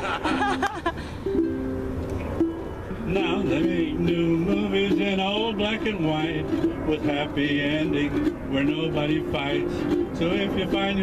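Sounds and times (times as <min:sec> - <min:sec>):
ukulele strumming chords: 0:01.2 - 0:11.0.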